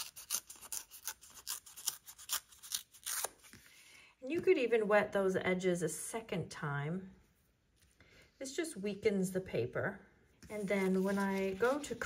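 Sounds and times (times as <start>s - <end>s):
damp paper tearing: 0.0s - 3.6s.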